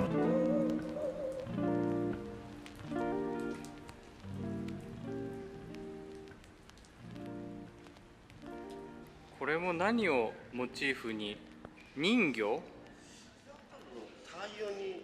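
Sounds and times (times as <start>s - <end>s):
soft background music: 0.0s - 15.0s.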